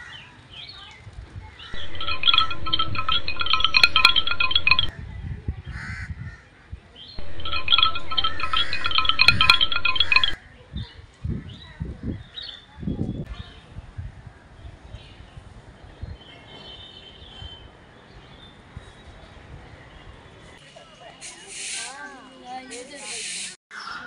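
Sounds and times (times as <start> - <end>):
high electronic ringtone tune: 1.8 - 4.9, 7.2 - 10.4.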